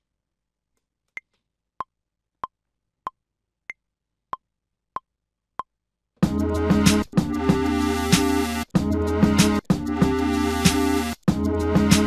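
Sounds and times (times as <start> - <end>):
sampled drum pattern: 6.2 - 12.0.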